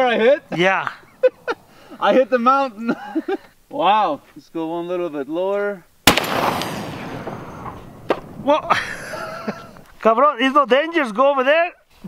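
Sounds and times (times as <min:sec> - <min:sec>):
rifle shot: 0:06.0 - 0:08.5.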